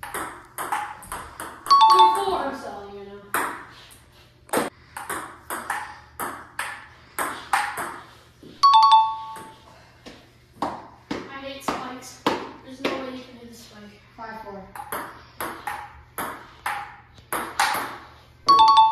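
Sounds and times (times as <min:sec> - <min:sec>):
bright electronic ding: 0:08.6 - 0:09.6, 0:18.5 - 0:18.9.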